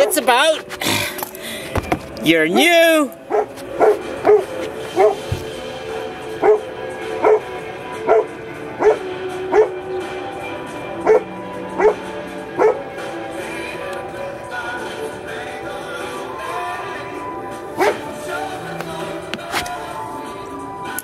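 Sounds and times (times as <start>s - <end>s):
droning music: 0.0s - 21.0s.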